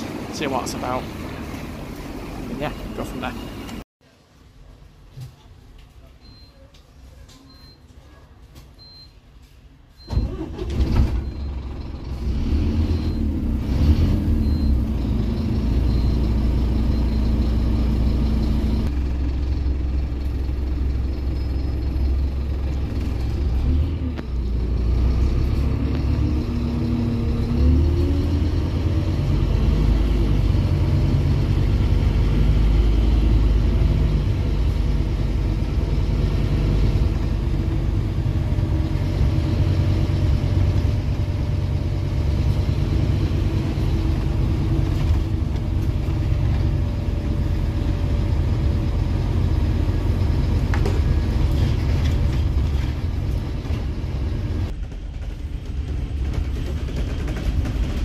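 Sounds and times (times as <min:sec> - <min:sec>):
bus engine starting and running: 0:00.0 - 0:06.5, 0:08.5 - 0:58.0.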